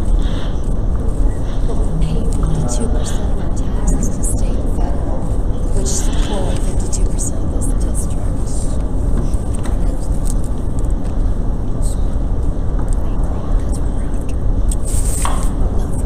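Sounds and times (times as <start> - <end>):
murmur of voices: 0.0 - 10.5
low rumble of room noise: 0.0 - 16.0.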